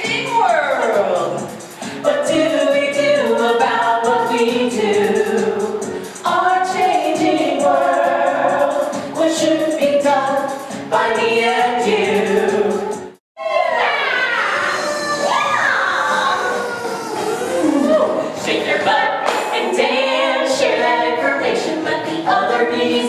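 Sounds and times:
backing music: 0.0s - 13.2s, 14.3s - 23.0s
voices singing together: 0.0s - 23.0s.

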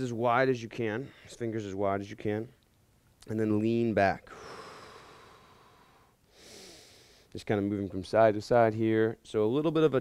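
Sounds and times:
man breathing: 4.3s - 7.3s.

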